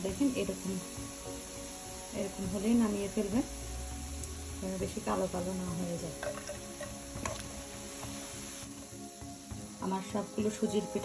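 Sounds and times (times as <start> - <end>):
deep-frying in hot oil: 0.0 - 11.0.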